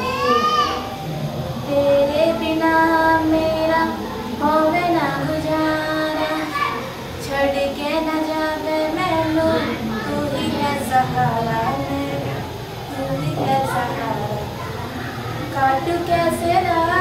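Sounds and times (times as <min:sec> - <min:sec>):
girl singing: 0:00.0 - 0:01.0, 0:01.6 - 0:17.0.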